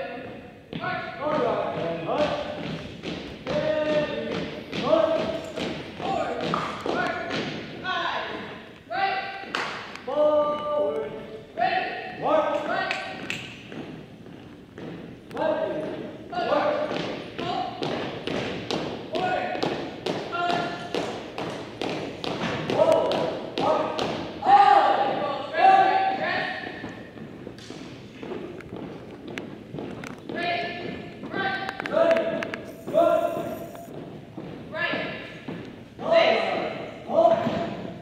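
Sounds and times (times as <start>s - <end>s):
person calling drill commands: 32.6s - 33.9s.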